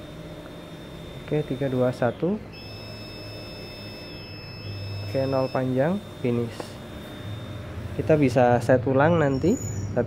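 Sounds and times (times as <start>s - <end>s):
long high-pitched timer beep: 0.0s - 9.9s.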